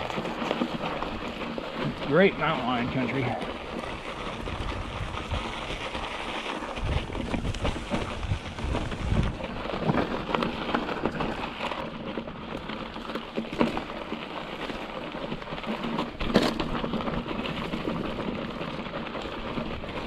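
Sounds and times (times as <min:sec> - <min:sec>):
bike tyres rolling over rock: 0:00.0 - 0:20.0.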